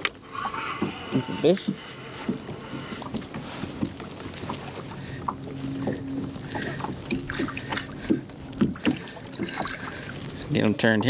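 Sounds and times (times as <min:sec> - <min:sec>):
steady low hum: 0:00.0 - 0:11.0
water noise: 0:00.0 - 0:11.0.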